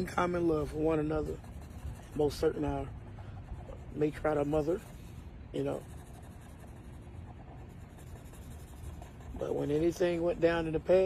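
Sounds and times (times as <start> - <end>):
low steady rumble: 0.0 - 11.0
pen scratching on drawing board: 0.0 - 11.0.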